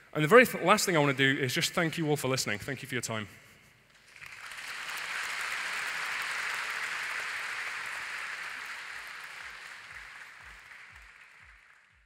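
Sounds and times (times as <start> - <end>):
audience applauding: 3.9 - 12.0.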